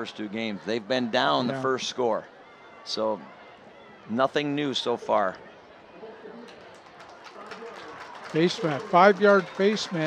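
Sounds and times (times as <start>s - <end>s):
close commentary: 0.0s - 10.0s.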